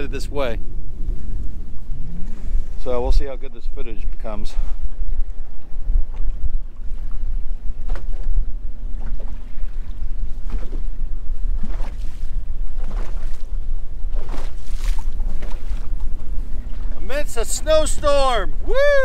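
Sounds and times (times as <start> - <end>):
waves slapping against hull: 0.0 - 19.0
wind rumbling on microphone: 0.0 - 19.0.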